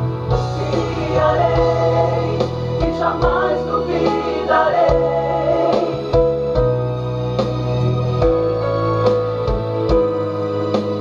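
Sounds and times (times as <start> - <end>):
instrumental accompaniment with bass: 0.0 - 11.0
group singing gospel harmonies: 0.3 - 6.4.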